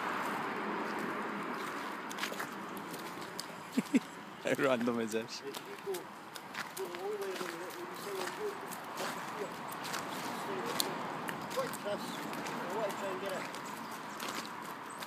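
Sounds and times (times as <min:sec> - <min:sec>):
footsteps on wet tarmac: 0:00.0 - 0:15.0.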